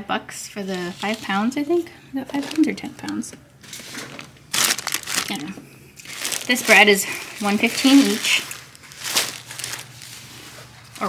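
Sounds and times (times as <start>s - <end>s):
plastic bags rustling: 0.6s - 11.0s.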